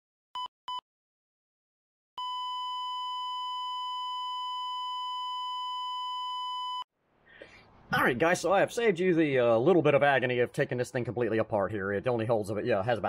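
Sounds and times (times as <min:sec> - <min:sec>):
heart monitor flatline tone: 0:02.2 - 0:06.8.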